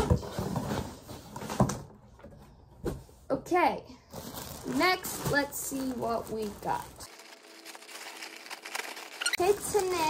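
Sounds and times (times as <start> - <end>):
plastic bag rustling and crinkling: 4.1 - 10.0.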